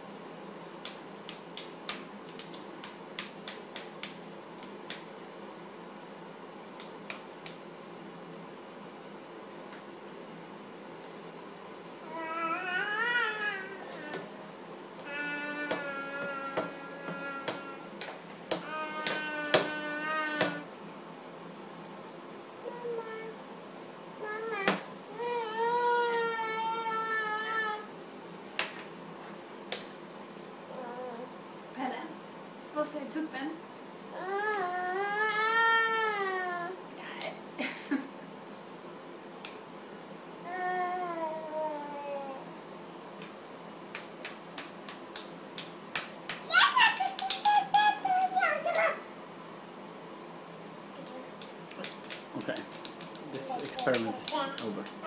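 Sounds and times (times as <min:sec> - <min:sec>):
hand slapping wet yoghurt: 0:00.8 - 0:05.1, 0:43.2 - 0:47.7
toddler sing-song cries: 0:12.1 - 0:14.3, 0:15.0 - 0:17.9, 0:18.6 - 0:20.7, 0:24.2 - 0:27.9, 0:34.1 - 0:36.8.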